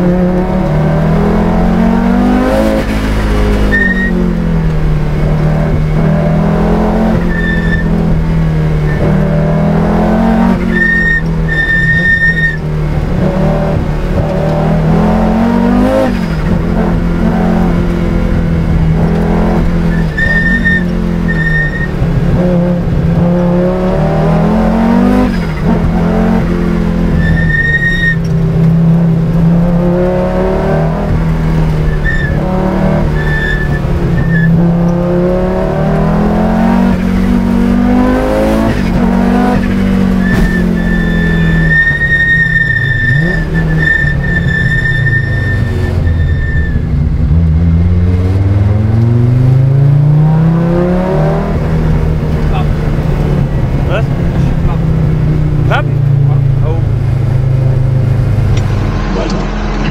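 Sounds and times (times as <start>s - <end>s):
car engine accelerating through gears: 0.0s - 59.9s
high-pitched squeals: 3.0s - 4.2s, 7.0s - 8.0s, 10.6s - 12.6s, 19.8s - 22.0s, 27.2s - 28.3s, 31.9s - 34.6s, 39.1s - 47.1s.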